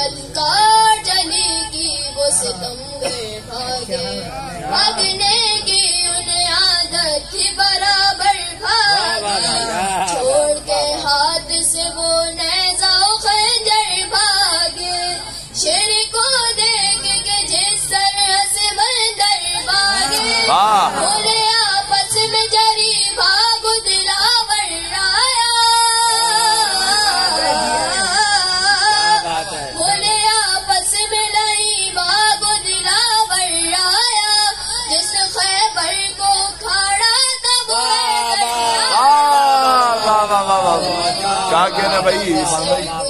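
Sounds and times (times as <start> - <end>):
boy singing into microphone: 0.0 - 39.9.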